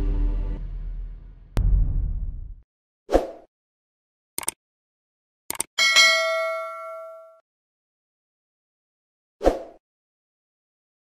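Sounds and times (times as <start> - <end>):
bright bell ding: 5.8 - 7.4.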